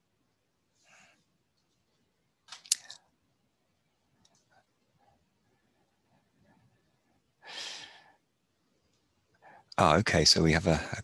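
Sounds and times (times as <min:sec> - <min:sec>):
breathy exhale into microphone: 0:07.4 - 0:08.2.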